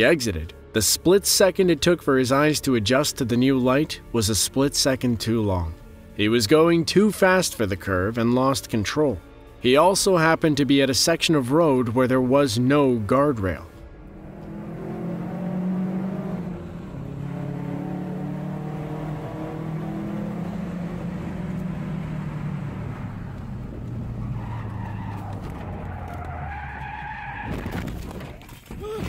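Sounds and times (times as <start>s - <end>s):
car engine running: 13.9s - 26.2s
tires squealing and skidding: 23.3s - 28.4s.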